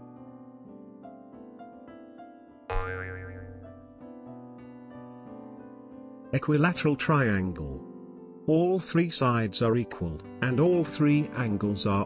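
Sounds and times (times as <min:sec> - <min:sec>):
soft keyboard music: 0:00.0 - 0:02.7, 0:03.5 - 0:12.0
wobbling pitch sound effect: 0:02.7 - 0:03.6.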